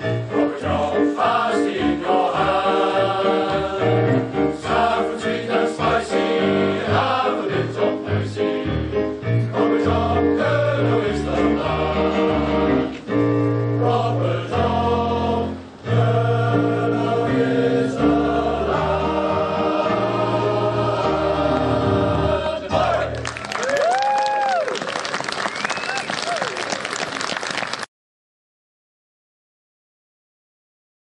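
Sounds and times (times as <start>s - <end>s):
male voice choir singing: 0.0s - 13.2s, 13.8s - 23.3s
audience applause and cheering: 20.6s - 27.9s.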